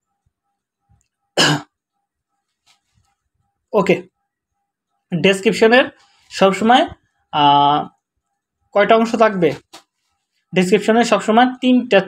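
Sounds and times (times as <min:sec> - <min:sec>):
person clearing throat: 0:01.4 - 0:01.8.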